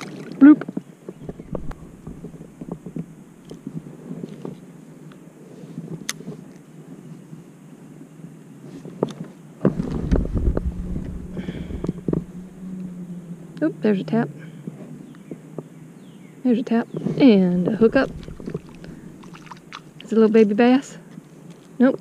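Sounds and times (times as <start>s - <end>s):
low rumble on microphone: 0.3s - 4.6s, 9.6s - 20.3s.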